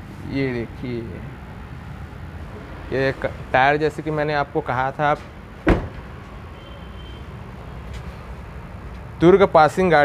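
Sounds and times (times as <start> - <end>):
car door shutting: 5.6 - 6.1.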